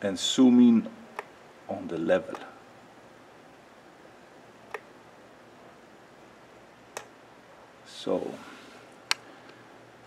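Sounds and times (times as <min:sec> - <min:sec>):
computer mouse clicks: 0:04.7 - 0:04.9.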